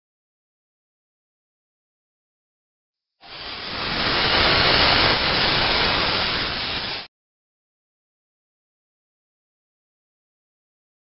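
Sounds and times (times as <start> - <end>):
steady hiss of noise: 3.2 - 7.1.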